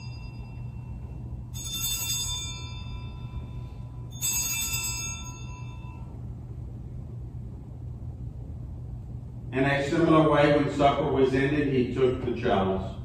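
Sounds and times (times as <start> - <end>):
altar bells ringing: 0.0 - 6.3.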